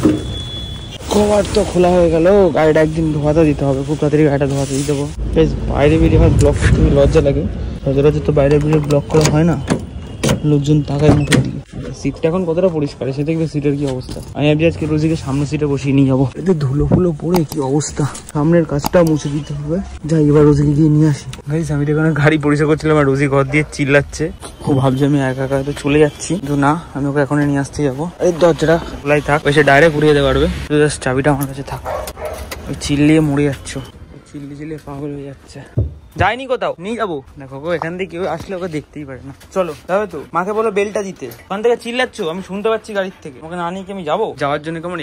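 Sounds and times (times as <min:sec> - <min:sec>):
man speaking: 0:01.0 - 0:09.7, 0:10.4 - 0:32.0.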